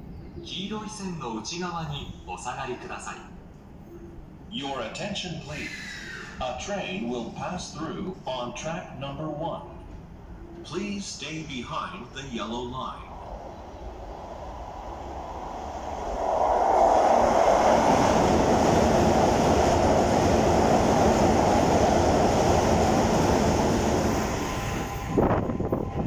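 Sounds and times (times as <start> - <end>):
electric train passing: 2.3 - 26.0.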